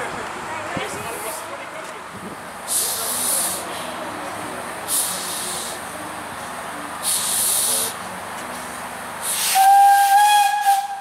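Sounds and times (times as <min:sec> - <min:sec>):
steam hissing bursts: 0:07.0 - 0:08.0, 0:09.2 - 0:11.0.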